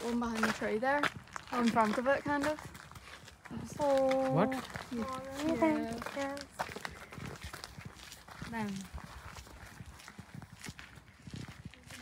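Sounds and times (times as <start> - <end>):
person speaking: 4.1 - 6.4.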